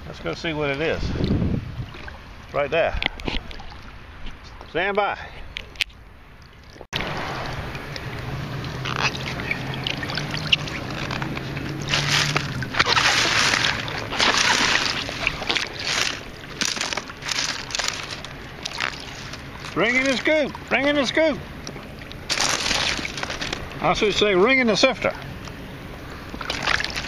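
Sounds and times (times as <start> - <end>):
water sloshing: 0.6 - 4.8, 5.4 - 27.0.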